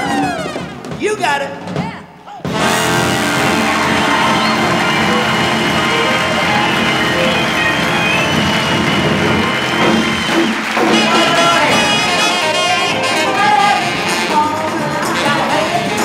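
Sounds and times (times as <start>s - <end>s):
big band brass playing: 2.4s - 16.0s.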